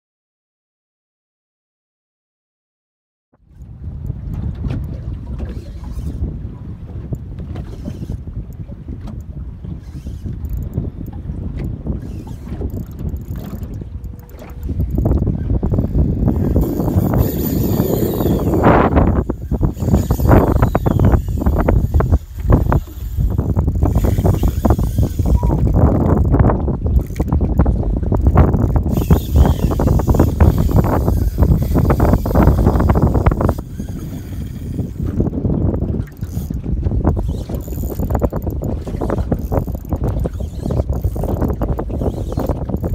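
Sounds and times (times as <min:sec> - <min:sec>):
wind buffeting microphone: 0:03.4 - 0:42.9
water slapping boat hull: 0:03.5 - 0:42.9.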